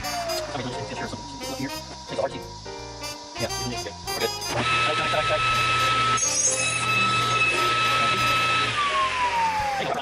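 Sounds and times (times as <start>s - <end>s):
table saw whine: 0.0s - 10.0s.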